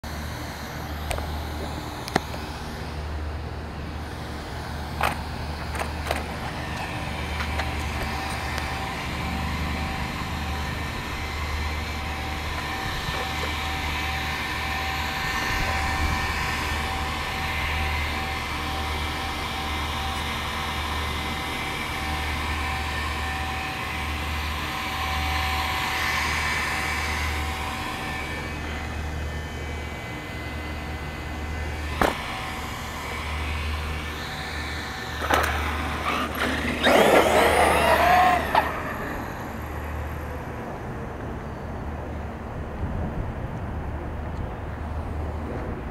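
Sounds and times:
electric motor rising whine: 0.0 - 42.0
wind buffeting microphone: 42.4 - 45.9.

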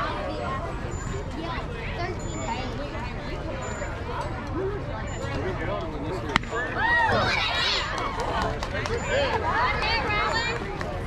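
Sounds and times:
spectators yelling and cheering: 6.5 - 11.0.

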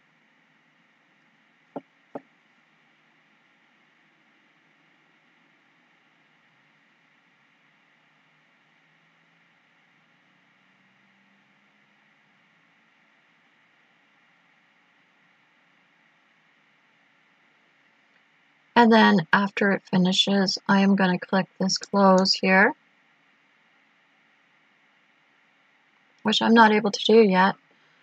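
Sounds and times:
faint microphone hiss: 0.0 - 28.0.

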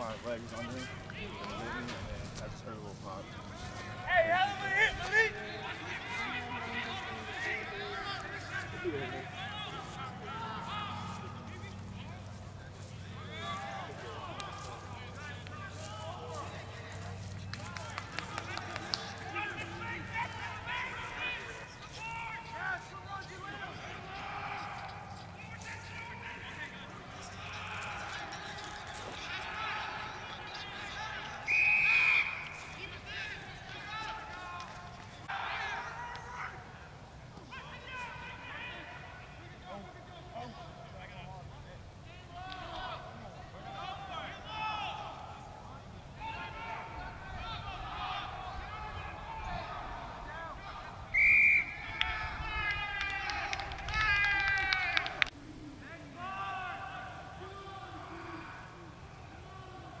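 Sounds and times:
players shouting: 0.0 - 60.0
referee's whistle blast: 31.5 - 32.4, 51.1 - 51.8.

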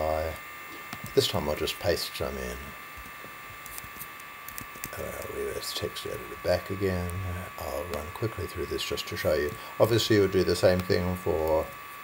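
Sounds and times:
electrical hum: 0.0 - 12.0
thin high steady tones: 0.0 - 12.0.

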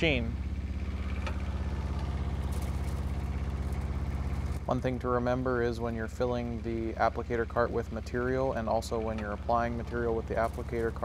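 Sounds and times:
diesel engine idling: 0.0 - 11.0.

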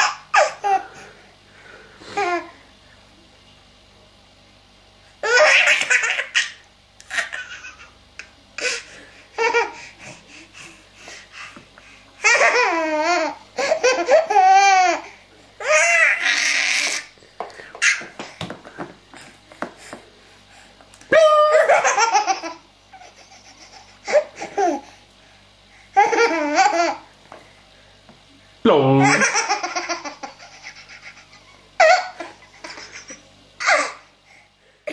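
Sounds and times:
baby laughing: 0.0 - 0.8, 5.2 - 8.0, 8.6 - 9.9, 12.2 - 17.1, 17.8 - 18.1, 21.4 - 24.9, 26.0 - 27.0, 29.0 - 34.0.

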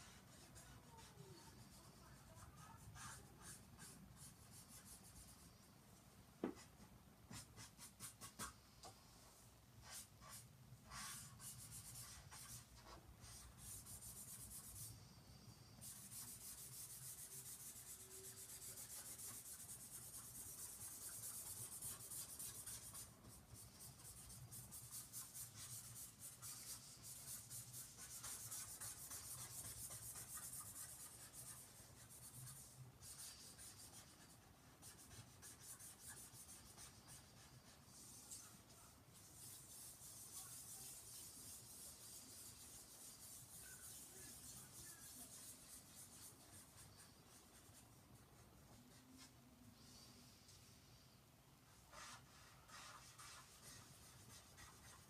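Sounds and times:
pen scratching on paper: 0.0 - 5.4, 9.8 - 15.0, 15.8 - 49.3, 51.9 - 55.0.

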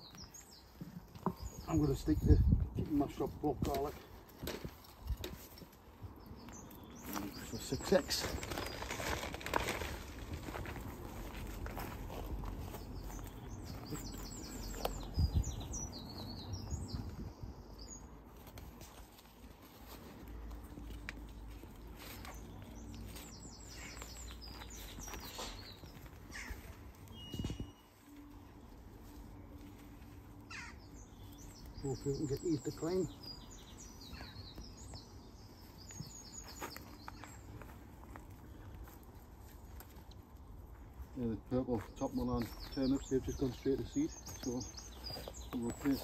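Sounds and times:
small birds twittering: 0.0 - 18.2, 21.1 - 39.8, 40.4 - 46.0
hands rustling in soil: 0.0 - 46.0.

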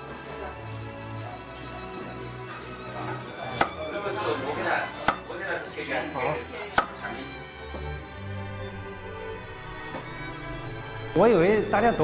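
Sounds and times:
knife cutting and scraping: 3.4 - 3.8, 6.5 - 7.1
cleaver knocking on chopping board: 3.5 - 3.8, 5.0 - 5.3, 6.7 - 7.0.

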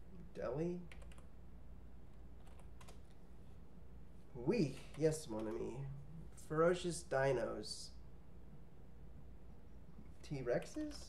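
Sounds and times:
keyboard keystrokes: 0.9 - 1.2, 2.4 - 3.1.

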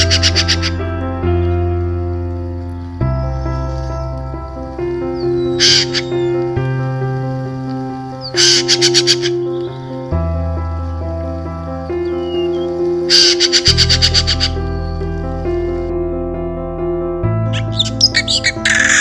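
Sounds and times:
soft keyboard chords: 0.0 - 19.0
magpie rattling calls: 5.3 - 6.4, 8.2 - 9.4, 12.2 - 14.6, 17.6 - 19.0.

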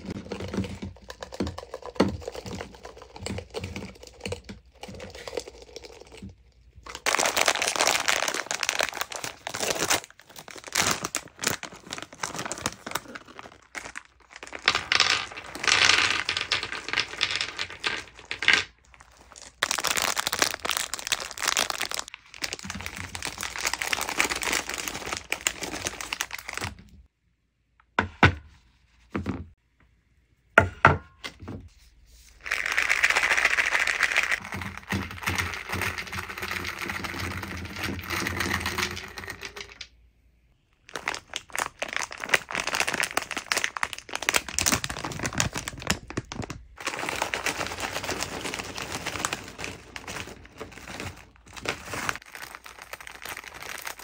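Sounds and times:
candies knocking onto wooden platter: 0.0 - 7.9, 13.4 - 20.9, 34.4 - 39.9
candies poured onto tray: 0.0 - 26.8, 32.4 - 39.9, 40.9 - 54.0
plastic bag crinkling: 0.0 - 27.0, 32.4 - 39.8, 40.7 - 54.0.

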